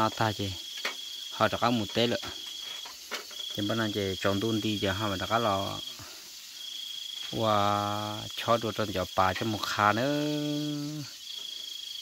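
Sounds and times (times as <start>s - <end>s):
crickets trilling: 0.0s - 12.0s
person holding a vowel: 10.2s - 11.0s.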